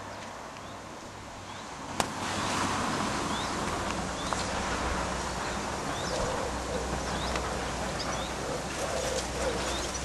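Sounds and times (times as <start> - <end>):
small birds chirping: 3.3 - 4.6, 5.2 - 10.0
low bird cooing: 5.9 - 10.0.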